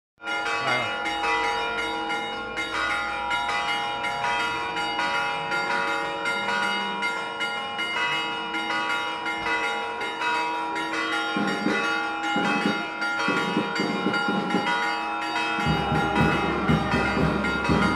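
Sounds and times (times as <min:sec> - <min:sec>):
church bells pealing: 0:00.2 - 0:17.9.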